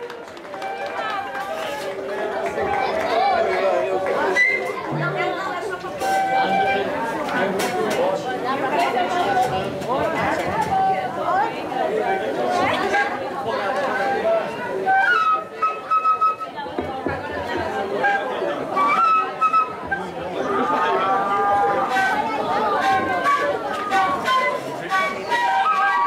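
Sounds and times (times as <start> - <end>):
crowd chatter: 0.0 - 26.0.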